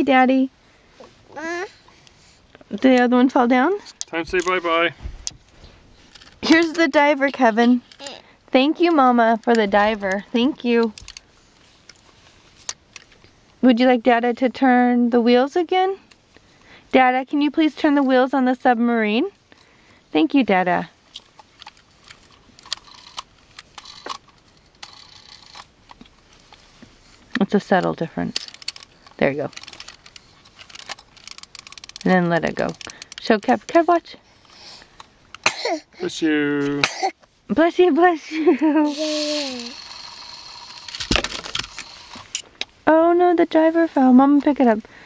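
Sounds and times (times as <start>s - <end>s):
soft rustle: 4.5s - 8.2s, 8.8s - 13.6s, 20.9s - 33.0s, 41.7s - 45.0s
plastic toy clicking and clattering: 10.8s - 11.2s, 21.6s - 26.0s, 28.2s - 33.8s, 38.9s - 42.4s.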